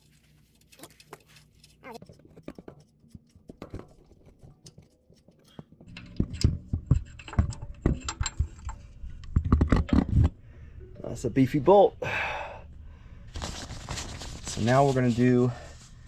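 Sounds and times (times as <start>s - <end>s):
metal bolt clicking and scraping: 0.6s - 10.3s.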